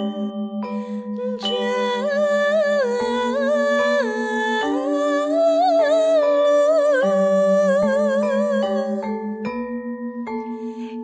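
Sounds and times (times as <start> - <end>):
hummed wavering melody: 0.0 - 11.0.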